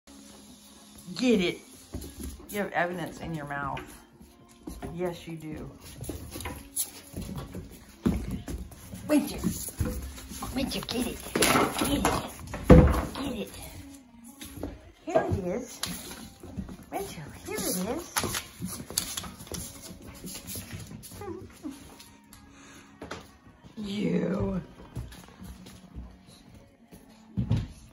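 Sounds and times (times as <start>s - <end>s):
patter of paws: 0.1s - 27.9s
puppies scuffling on wooden floor: 0.1s - 27.9s
dogs scuffling over paper: 15.8s - 22.1s
claws clicking on wooden floor: 17.5s - 22.4s.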